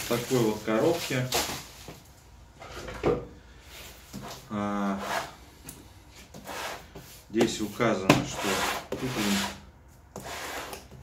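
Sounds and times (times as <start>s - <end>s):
hands rubbing cardboard: 6.3s - 9.6s.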